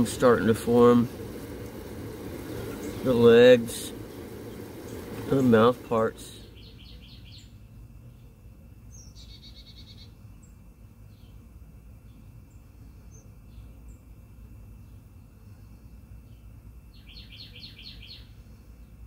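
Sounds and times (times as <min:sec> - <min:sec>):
low steady rumble: 0:00.0 - 0:09.0
songbirds chirping: 0:00.0 - 0:11.4, 0:16.1 - 0:19.0.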